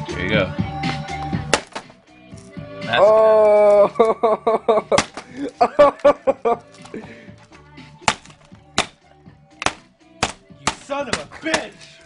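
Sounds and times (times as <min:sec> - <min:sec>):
computer monitor being smashed: 0:01.5 - 0:02.0, 0:04.9 - 0:05.4, 0:08.0 - 0:09.0, 0:09.6 - 0:11.8.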